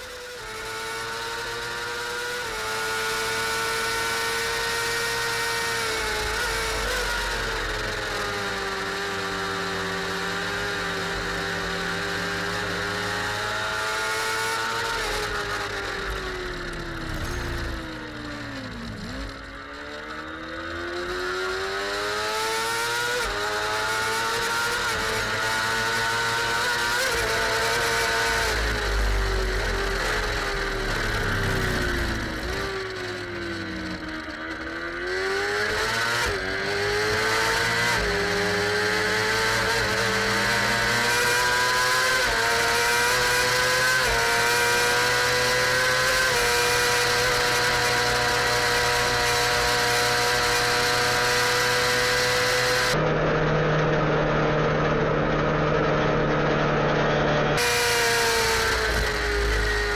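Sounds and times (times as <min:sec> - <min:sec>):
racing sidecar engine: 0:00.0 - 0:59.9.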